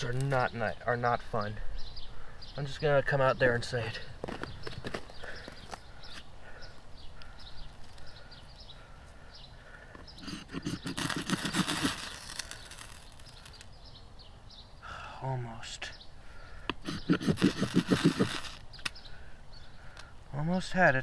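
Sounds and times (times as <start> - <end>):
knife scraping ferro rod: 10.2 - 13.2, 16.8 - 18.6.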